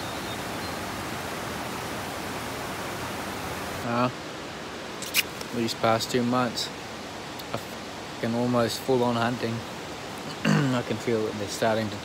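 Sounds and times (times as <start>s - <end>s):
rain falling on bushes: 0.0s - 12.0s.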